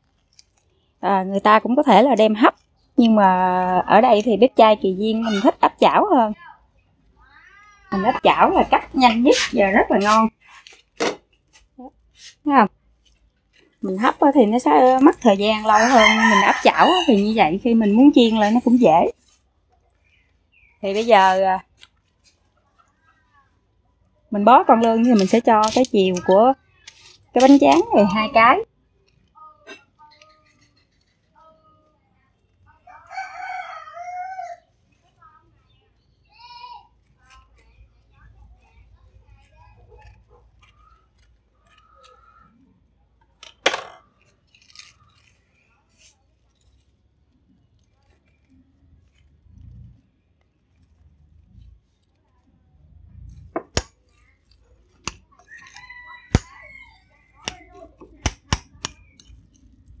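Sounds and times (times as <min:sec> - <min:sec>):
rooster crowing: 0:15.5 - 0:17.4, 0:32.9 - 0:34.6, 0:55.5 - 0:57.1.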